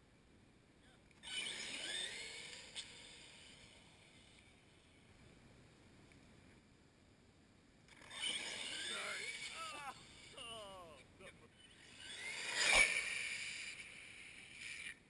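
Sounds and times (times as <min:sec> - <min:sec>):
electric motor whine: 0:01.2 - 0:04.5, 0:07.9 - 0:10.7, 0:11.7 - 0:15.0.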